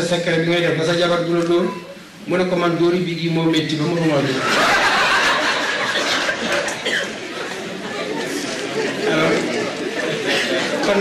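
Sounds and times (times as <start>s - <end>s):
audience murmuring: 3.8s - 11.0s.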